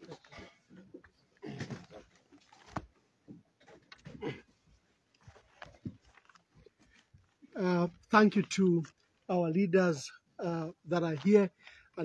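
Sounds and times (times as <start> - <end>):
handling rustles: 3.6 - 7.5.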